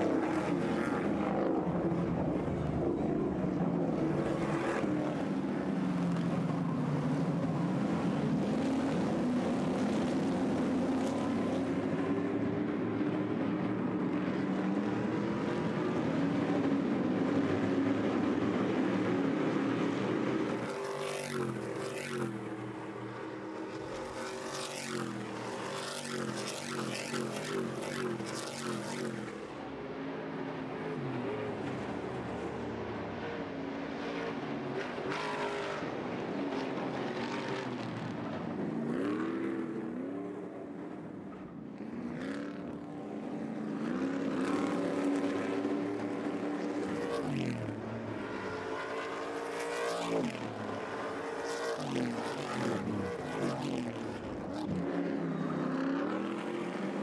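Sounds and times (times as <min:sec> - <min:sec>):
race truck engines revving: 0:00.0 - 0:57.0.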